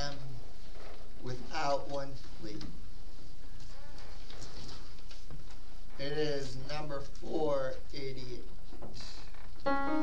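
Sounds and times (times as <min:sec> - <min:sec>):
man speaking: 0:01.2 - 0:02.7, 0:06.0 - 0:08.5.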